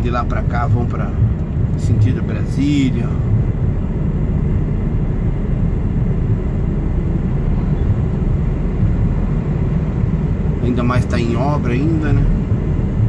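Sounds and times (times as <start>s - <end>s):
road noise: 0.0s - 13.0s
truck diesel engine rumble: 0.0s - 13.0s.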